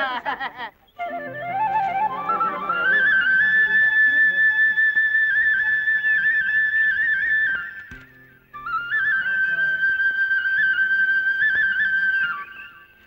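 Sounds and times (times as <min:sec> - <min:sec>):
flute melody: 0:00.9 - 0:13.0.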